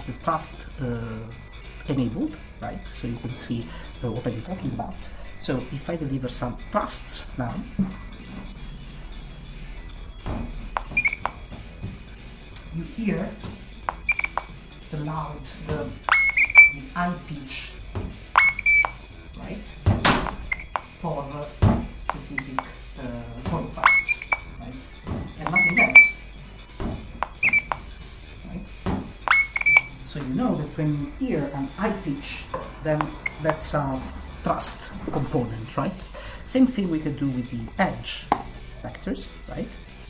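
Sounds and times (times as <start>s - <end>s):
music: 0.0s - 40.0s
sharp clicks: 13.9s - 14.5s
high-pitched electronic sweeping tones: 16.1s - 16.8s
high-pitched electronic tone: 16.1s - 16.8s, 23.8s - 24.5s, 25.5s - 26.2s, 29.3s - 30.0s.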